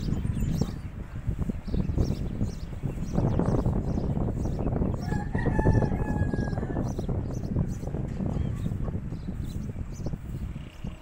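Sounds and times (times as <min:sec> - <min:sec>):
rooster crowing: 0:05.0 - 0:06.9.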